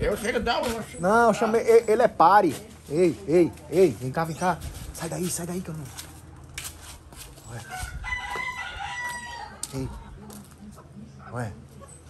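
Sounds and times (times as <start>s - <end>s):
rooster crowing: 7.6s - 10.0s.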